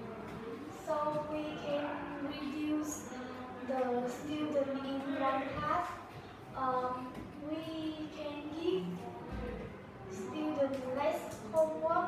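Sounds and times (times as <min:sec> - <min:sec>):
girl speaking: 0:00.8 - 0:03.0, 0:06.6 - 0:08.9, 0:10.3 - 0:12.0.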